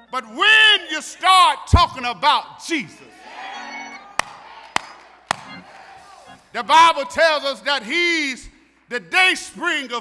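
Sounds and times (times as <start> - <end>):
congregation shouting and murmuring: 2.9 - 6.6.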